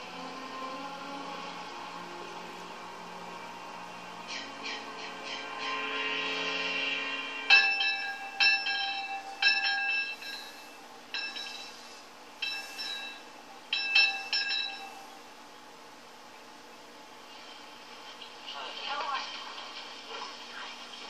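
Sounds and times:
metal bell clanging: 4.4 - 15.2.

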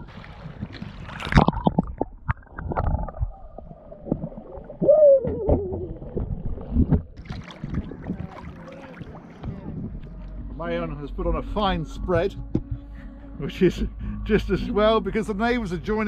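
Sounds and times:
muffled underwater gurgling: 0.0 - 10.2
water splashing and sloshing: 0.0 - 10.9.

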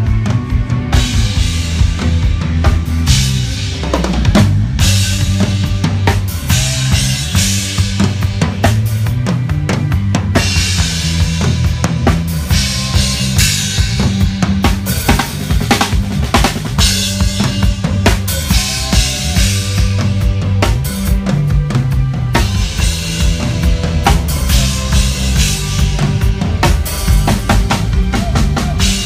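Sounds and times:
low bass notes: 0.0 - 29.0
rock drum kit playing: 0.0 - 29.0.

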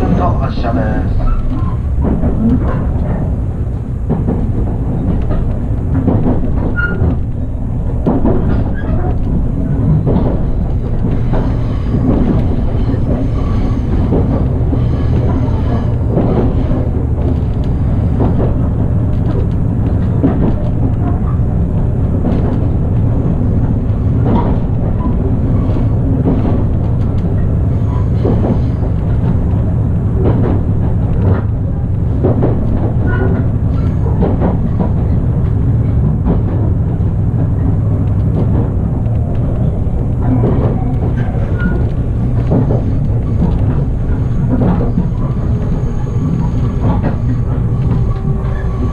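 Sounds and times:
train running drone: 0.0 - 48.9
wheels clacking over rail joints: 0.0 - 48.9.

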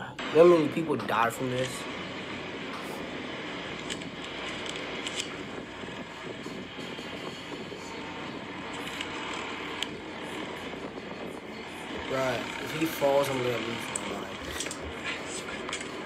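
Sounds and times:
steady rushing noise: 0.1 - 16.0.

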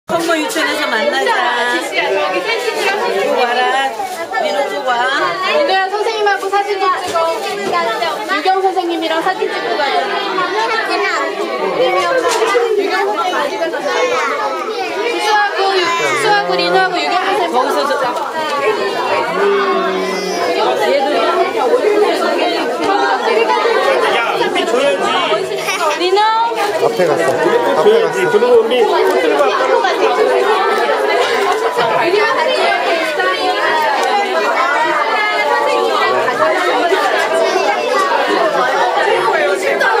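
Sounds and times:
chatter of many voices: 0.0 - 40.0
hubbub of people talking: 0.0 - 40.0.

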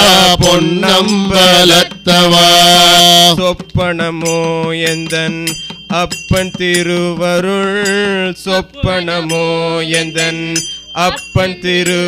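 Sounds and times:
voices singing devotional song: 0.0 - 12.0.

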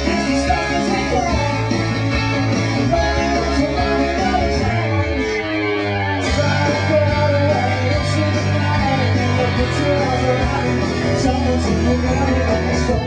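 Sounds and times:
live rock band: 0.0 - 13.0
person singing: 0.0 - 13.0.

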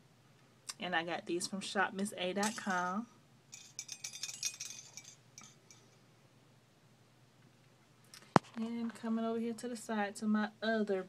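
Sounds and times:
metal jewellery clinking: 2.4 - 6.0.

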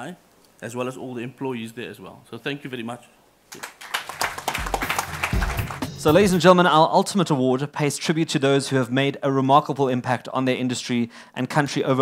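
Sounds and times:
audience applause: 3.5 - 6.4.

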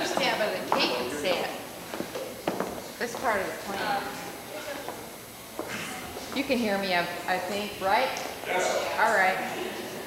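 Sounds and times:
murmur of voices: 2.9 - 10.0.

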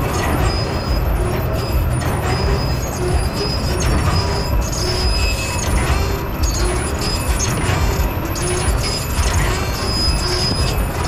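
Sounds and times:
carousel rumble: 0.0 - 11.0
faint high squeaks: 0.0 - 11.0.

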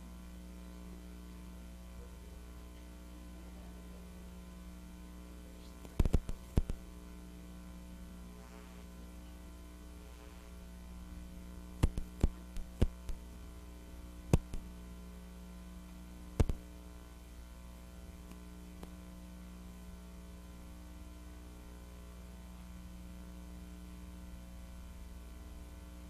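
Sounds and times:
electrical mains hum: 0.0 - 26.0
sharp clicks and knocks: 5.8 - 6.8, 11.8 - 13.2, 14.3 - 14.7, 16.4 - 16.6.

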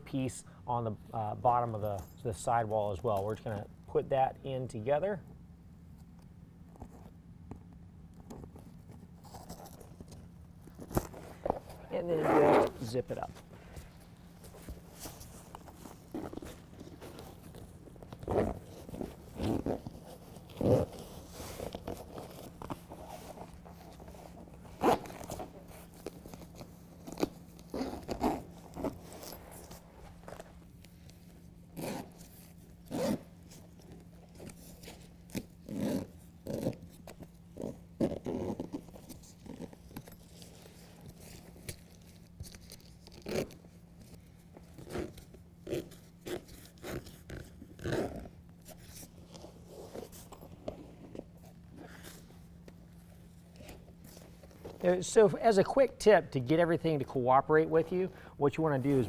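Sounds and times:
faint steady hum: 0.0 - 59.0
stiff liner scraping and rustling: 8.2 - 55.6
zipper being pulled: 9.1 - 54.8.

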